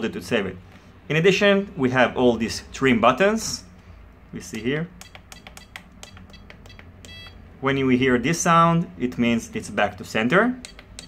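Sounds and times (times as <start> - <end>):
short beeps from transmitter buttons: 5.0 - 7.4, 10.6 - 11.0.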